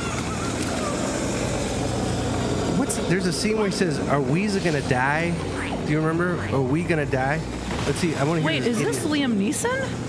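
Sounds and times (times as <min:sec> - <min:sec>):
engine-like soundtrack drone: 0:00.0 - 0:07.7.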